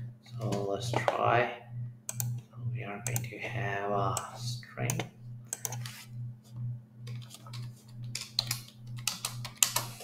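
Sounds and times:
low hum: 0:00.0 - 0:10.0
computer keyboard typing: 0:02.1 - 0:02.4, 0:03.0 - 0:03.3, 0:04.9 - 0:05.9, 0:07.0 - 0:10.0.

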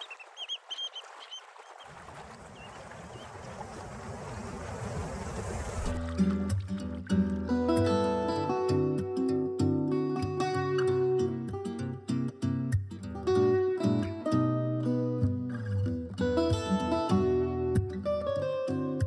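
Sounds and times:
water hiss: 0:01.9 - 0:06.0
plucked guitar music with bass: 0:06.0 - 0:19.0.

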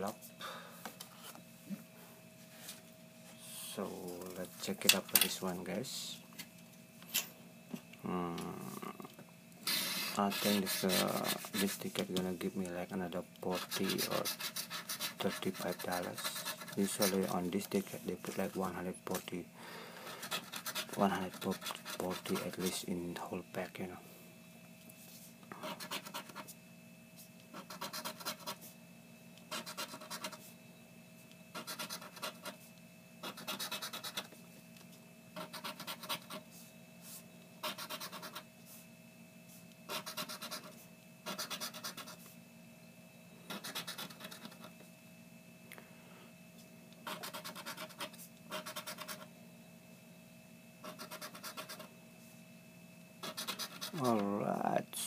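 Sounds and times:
faint steady hum: 0:00.0 - 0:55.0
scraper scratching lottery ticket: 0:09.6 - 0:12.0, 0:13.5 - 0:18.7, 0:20.0 - 0:22.8, 0:25.6 - 0:26.5, 0:27.5 - 0:28.6, 0:29.5 - 0:30.4, 0:31.5 - 0:32.6, 0:33.2 - 0:34.3, 0:35.4 - 0:36.5, 0:37.6 - 0:38.4, 0:39.9 - 0:42.2, 0:43.5 - 0:44.7, 0:47.0 - 0:49.3, 0:50.8 - 0:51.9, 0:53.2 - 0:54.3.

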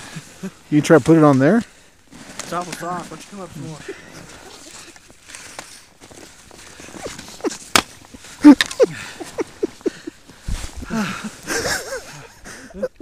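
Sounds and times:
snow crunching: 0:00.0 - 0:12.3
clothing rustling: 0:01.0 - 0:12.1
man laughing: 0:03.6 - 0:05.0, 0:06.8 - 0:07.8, 0:08.4 - 0:13.0.

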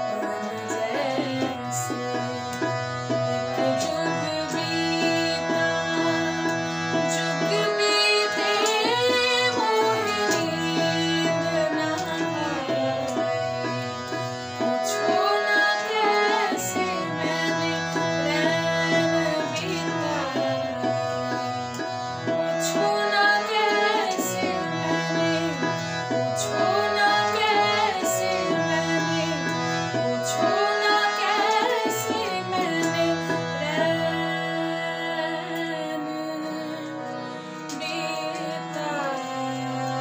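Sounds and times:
woman singing: 0:00.0 - 0:02.7, 0:03.3 - 0:06.5, 0:07.2 - 0:14.1, 0:14.7 - 0:20.9, 0:22.6 - 0:25.8, 0:26.4 - 0:37.1, 0:37.7 - 0:40.0.

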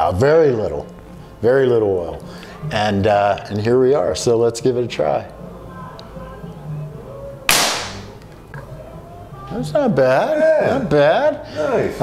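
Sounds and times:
air rifle shot: 0:07.5 - 0:08.2.

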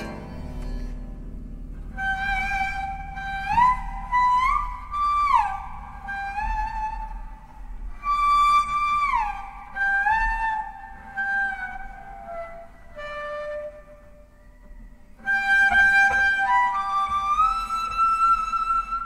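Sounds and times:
bowed double bass: 0:00.0 - 0:08.0.

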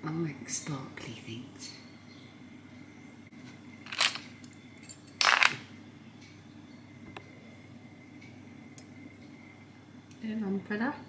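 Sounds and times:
metal jewellery clattering: 0:03.9 - 0:05.6.

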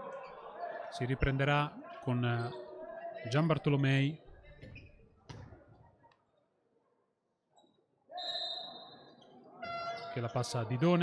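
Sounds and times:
ball bounce on court: 0:04.6 - 0:05.6
referee's whistle: 0:08.1 - 0:10.4.

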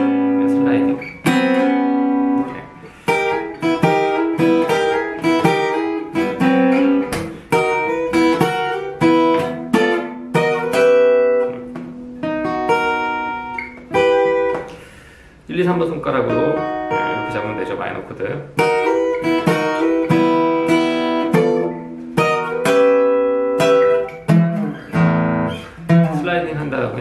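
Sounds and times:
fingerstyle acoustic guitar: 0:00.0 - 0:15.1, 0:16.2 - 0:27.0.

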